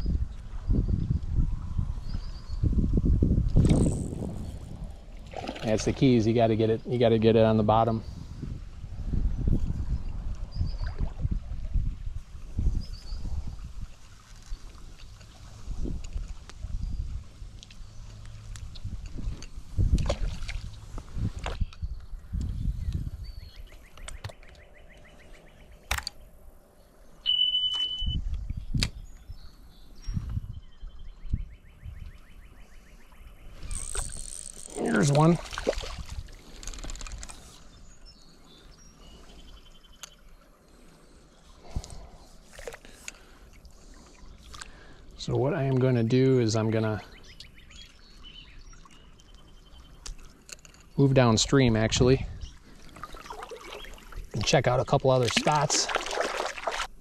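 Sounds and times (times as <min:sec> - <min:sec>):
creek water splashing: 0:03.5 - 0:06.5, 0:20.0 - 0:21.4, 0:33.6 - 0:37.7, 0:52.6 - 0:57.0
short steady beep: 0:27.2 - 0:28.2.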